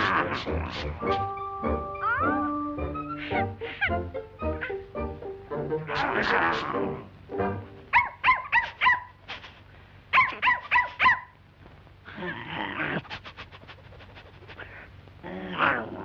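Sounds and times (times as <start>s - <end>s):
rough growl: 0.0s - 1.3s, 5.9s - 7.1s, 14.5s - 16.0s
cartoon dog yapping: 0.0s - 4.8s, 5.8s - 7.0s, 7.9s - 9.1s, 10.1s - 11.3s, 15.3s - 16.0s.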